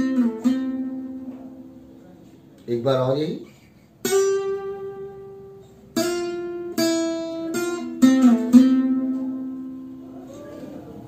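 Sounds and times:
acoustic guitar plucked notes: 0.0s - 2.1s, 3.5s - 11.0s.

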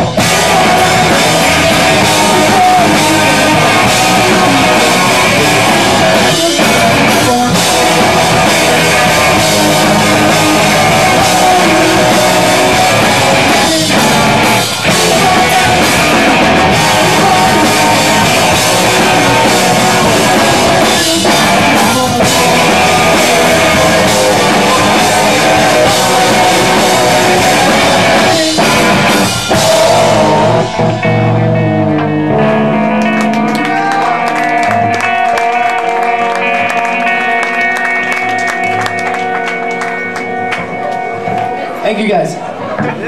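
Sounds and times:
held guitar chords ringing: 0.0s - 43.0s
live rock band playing: 0.0s - 43.0s.

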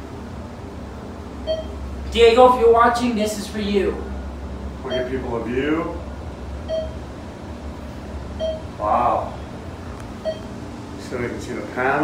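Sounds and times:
steady low elevator hum: 0.0s - 12.0s
elevator electronic beep: 1.4s - 1.8s, 4.9s - 5.3s, 6.6s - 7.1s, 8.3s - 8.8s, 10.2s - 10.6s.

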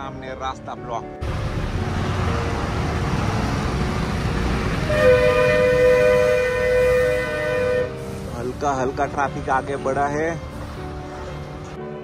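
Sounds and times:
traffic engine rumble: 1.2s - 11.8s
vehicle horn blast: 4.8s - 8.1s.

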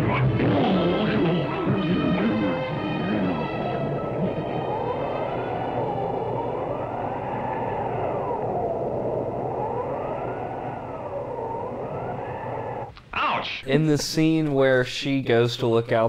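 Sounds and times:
wailing tone rising and falling: 0.0s - 13.6s
steady rushing noise: 0.0s - 13.9s.

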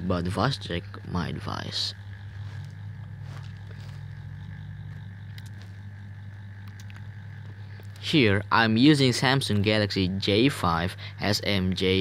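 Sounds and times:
low hum: 0.0s - 12.0s
faint clicks: 4.0s - 8.0s.

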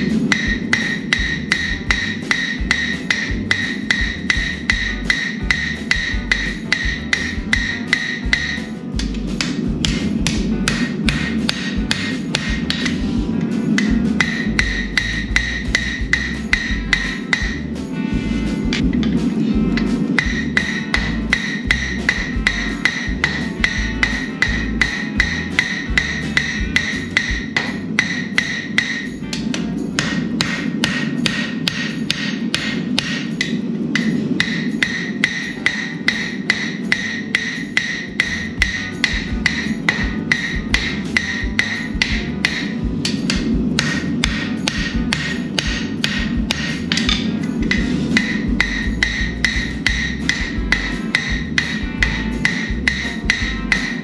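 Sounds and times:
anvil ringing: 0.0s - 8.8s, 19.0s - 54.0s
hammer striking hot steel: 0.0s - 13.1s, 13.8s - 17.8s, 18.7s - 54.0s.

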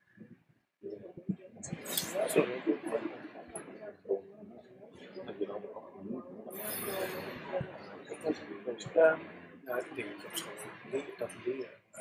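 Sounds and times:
audience talking: 0.8s - 12.0s.

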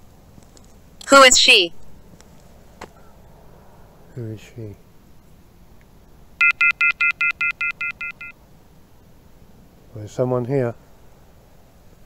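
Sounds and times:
rapid electronic beeps: 6.4s - 8.3s.

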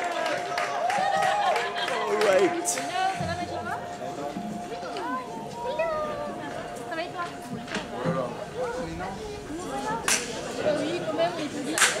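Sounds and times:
people talking in a hall: 0.0s - 12.0s.

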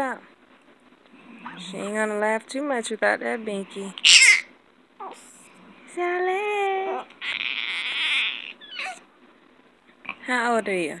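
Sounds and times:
baby squealing: 4.0s - 5.2s, 6.9s - 9.0s
baby cooing: 4.0s - 5.3s, 6.6s - 9.0s.

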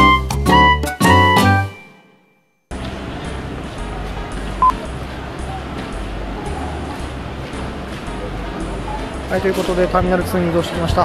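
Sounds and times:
distant voices: 2.7s - 11.0s.

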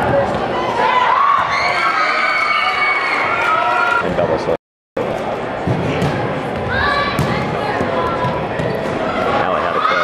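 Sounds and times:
people shouting and talking: 0.0s - 10.0s
volleyball thuds: 5.6s - 8.9s.

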